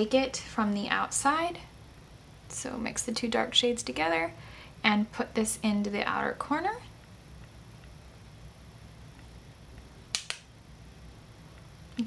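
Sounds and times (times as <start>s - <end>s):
quick sharp clicks: 10.1s - 10.5s.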